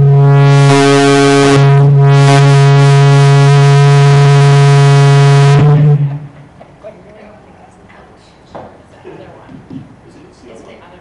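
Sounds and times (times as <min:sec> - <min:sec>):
microphone feedback howl: 0:00.0 - 0:06.4.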